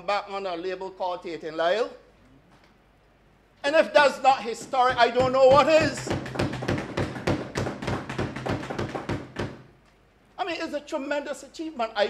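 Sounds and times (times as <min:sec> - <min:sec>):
thumping on wooden desks: 0:04.4 - 0:09.7.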